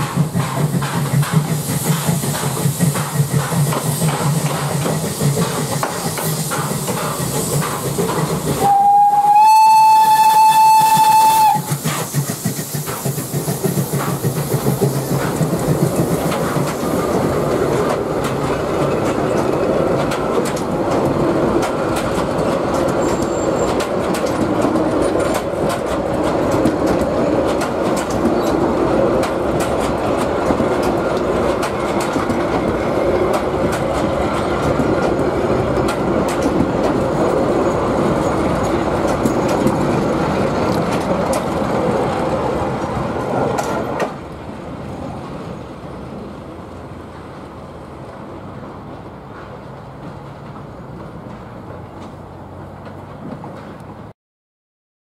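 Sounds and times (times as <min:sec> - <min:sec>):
wheels clicking over rail joints: 0:00.0 - 0:44.4, 0:48.9 - 0:54.1
steam whistle blast: 0:08.6 - 0:11.8.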